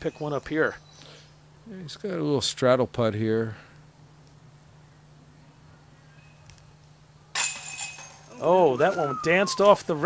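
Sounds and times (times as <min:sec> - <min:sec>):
disc hitting metal basket chains: 0:07.3 - 0:08.6.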